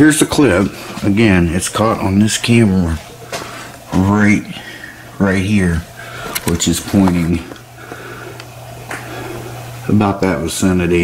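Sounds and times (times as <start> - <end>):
faint room noise: 0.0 - 11.0
steady low hum: 0.0 - 11.0.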